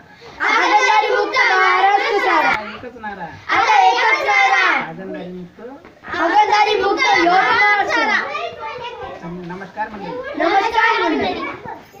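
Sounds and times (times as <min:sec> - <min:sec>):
children talking and laughing: 0:00.0 - 0:12.0.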